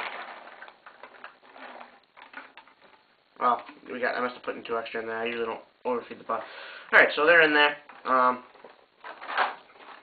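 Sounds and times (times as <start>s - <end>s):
paintballs clicking and rattling: 0.0s - 3.9s.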